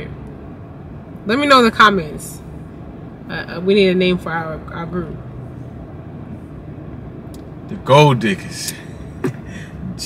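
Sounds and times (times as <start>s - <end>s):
car engine idling hum: 0.0s - 10.0s.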